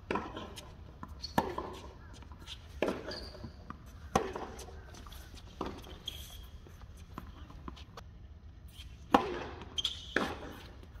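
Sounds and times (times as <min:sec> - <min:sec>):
tennis balls struck by rackets: 0:00.0 - 0:06.0, 0:09.0 - 0:11.0
shoe squeaks on hard court: 0:00.2 - 0:08.0, 0:08.7 - 0:10.8.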